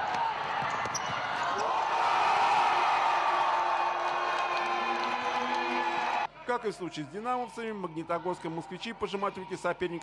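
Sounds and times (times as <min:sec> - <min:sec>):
basketball bounces on court: 0:00.0 - 0:01.3
spectators shouting and cheering: 0:00.0 - 0:06.3.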